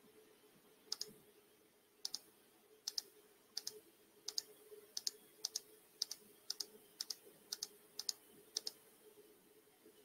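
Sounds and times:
faint steady hum: 0:00.0 - 0:10.0
computer mouse clicks: 0:00.9 - 0:01.2, 0:02.0 - 0:08.8.

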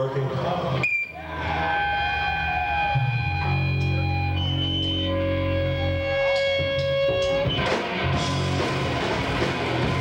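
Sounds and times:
electric guitars ringing notes: 0:00.7 - 0:10.0.

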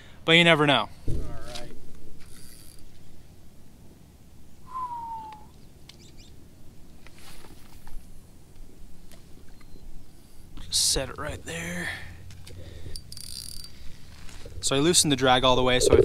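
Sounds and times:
fishing reel clicks: 0:02.3 - 0:02.9, 0:13.0 - 0:13.7
whistle falling in pitch: 0:04.7 - 0:05.5.

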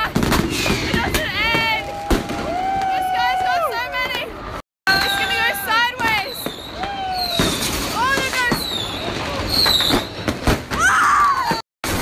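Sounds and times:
firecracker bangs: 0:00.0 - 0:03.0, 0:04.9 - 0:10.8
whistling fireworks: 0:00.0 - 0:03.6, 0:04.9 - 0:12.0.

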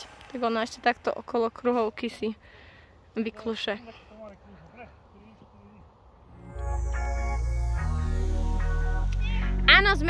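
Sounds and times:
low rumble: 0:06.2 - 0:10.0.

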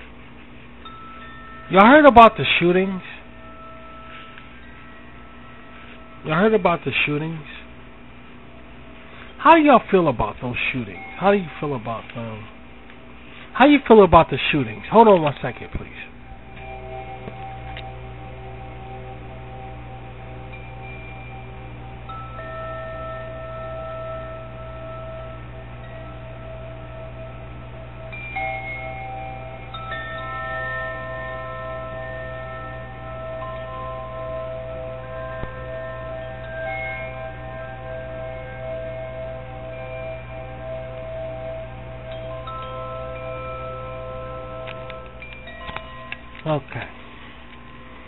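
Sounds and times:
chimes ringing: 0:00.0 - 0:48.0
steady low hum: 0:00.0 - 0:48.0.

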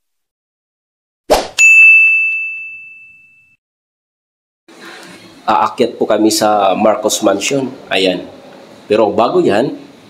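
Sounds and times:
brief swish: 0:01.3 - 0:01.6
bright bell ding: 0:01.6 - 0:03.6.

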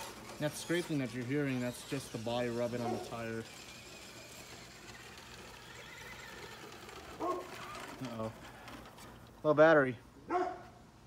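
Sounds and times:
electric toy truck motor whine: 0:00.0 - 0:09.4.

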